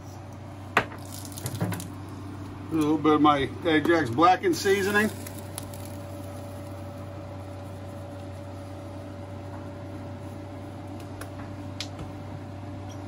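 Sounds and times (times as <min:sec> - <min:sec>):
kitchen appliance humming: 0:00.0 - 0:13.0.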